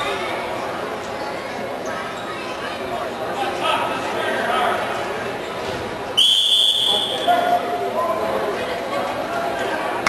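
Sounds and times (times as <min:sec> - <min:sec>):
referee's whistle blast: 0:06.2 - 0:07.4.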